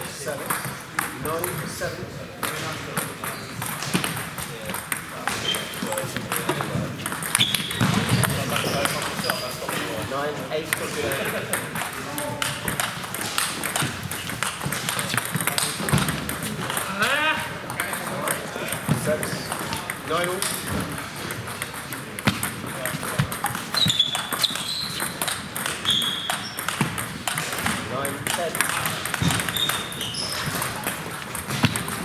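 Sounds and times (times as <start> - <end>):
voices in background: 0.0 - 32.0
table tennis ball clicking: 2.4 - 9.9, 10.6 - 17.1, 17.7 - 32.0.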